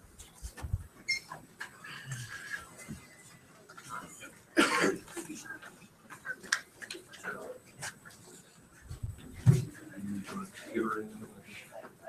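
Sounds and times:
person coughing: 4.6s - 5.1s.

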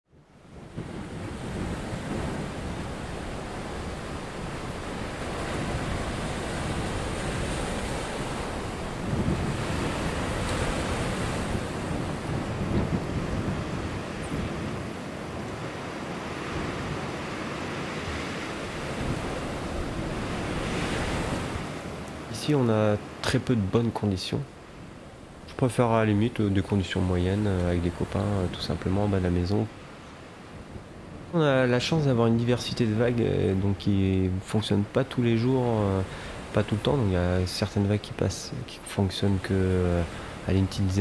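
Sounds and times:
ocean waves rushing: 0.3s - 41.0s.

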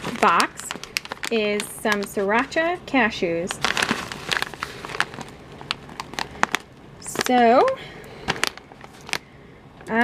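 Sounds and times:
snack pouch crinkling: 0.0s - 2.6s, 3.4s - 9.3s.

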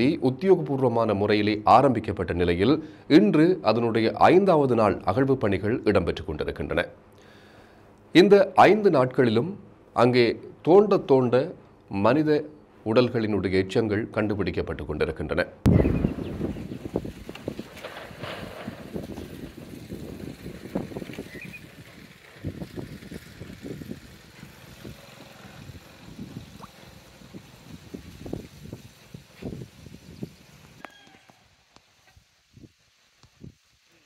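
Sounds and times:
outdoor background sound: 15.6s - 34.0s.

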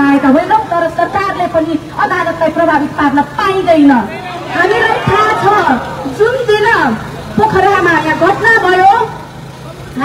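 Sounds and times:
woman speaking into a microphone: 0.0s - 9.2s.

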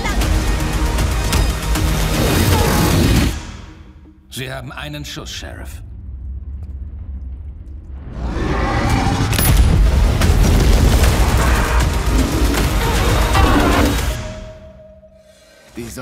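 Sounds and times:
loud explosion with crackling: 9.3s - 11.9s.

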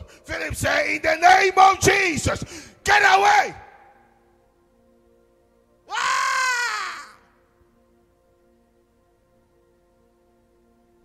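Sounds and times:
man's high-pitched wailing scream: 5.9s - 7.3s
faint keyboard chord: 7.2s - 11.0s.

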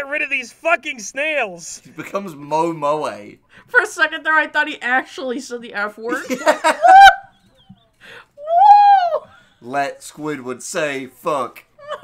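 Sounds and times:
person squealing laugh: 6.4s - 7.4s, 8.4s - 9.2s
intake of breath: 8.0s - 8.4s.

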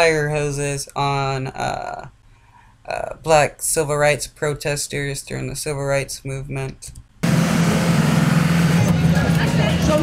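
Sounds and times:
heavy vehicle engine droning: 7.2s - 10.0s
loud rushing noise: 7.2s - 10.0s.

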